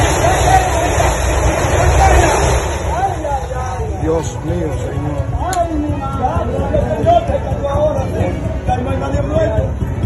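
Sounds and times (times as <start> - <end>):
low rumble of house collapsing: 0.0 - 4.4
excited onlookers' voices: 0.0 - 10.0.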